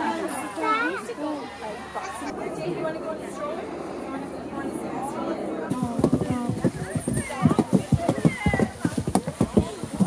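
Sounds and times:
adults talking and calling out: 0.0s - 10.0s
children's high voices: 6.8s - 8.8s.

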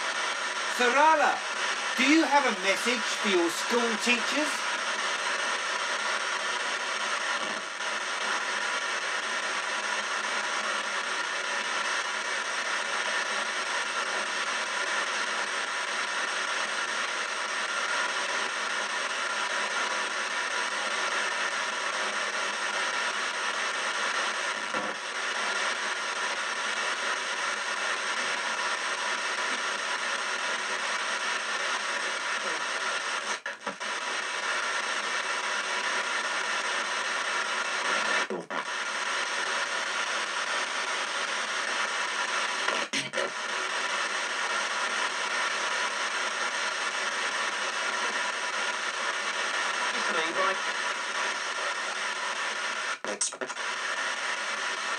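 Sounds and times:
radio static sweeping: 0.0s - 15.3s, 20.0s - 54.9s.

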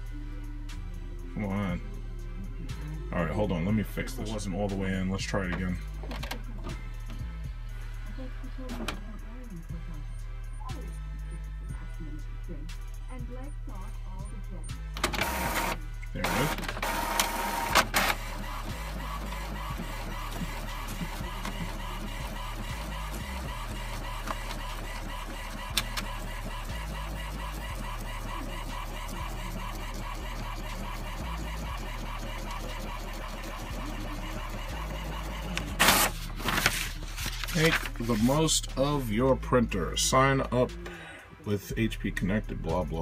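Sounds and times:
inkjet printer printing: 14.8s - 38.4s
paper feeding into printer: 15.0s - 38.4s.

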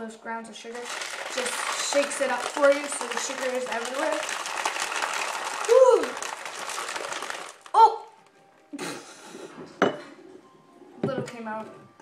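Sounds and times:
ice rattling in shaken tumbler: 0.7s - 7.8s.

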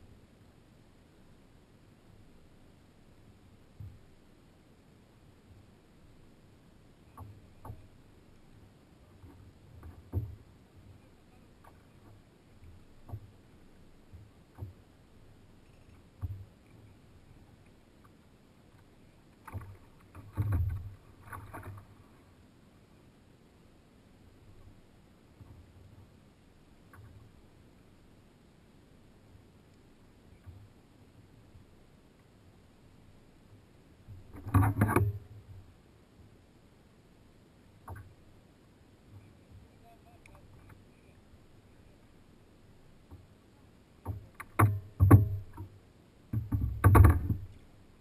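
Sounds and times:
knocks and rattles on plastic kayak: 7.1s - 8.1s, 9.0s - 15.0s, 15.9s - 17.4s, 18.0s - 22.2s, 34.0s - 35.7s, 44.0s - 48.0s
faint click: 29.6s - 30.7s, 39.1s - 41.2s
knocks on plastic kayak hull: 44.1s - 45.6s.

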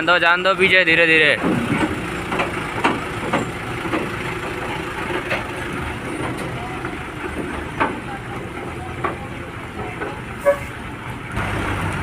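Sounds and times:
diesel engine running at low revs: 0.0s - 12.0s.

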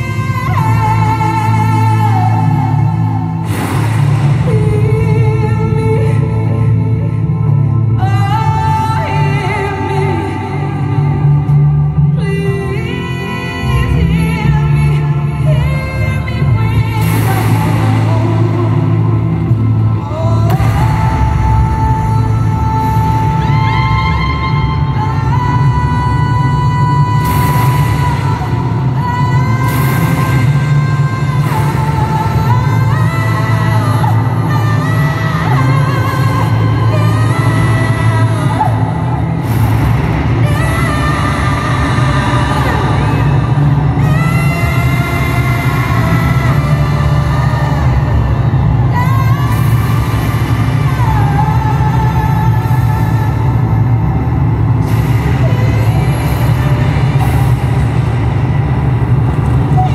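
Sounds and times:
heavy low drone: 0.0s - 59.9s
live rock music: 0.0s - 59.9s
cymbal crash: 3.4s - 4.9s.

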